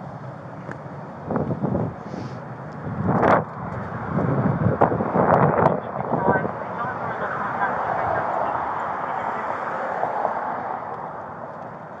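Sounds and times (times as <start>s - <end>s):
wind on microphone: 1.2s - 9.2s.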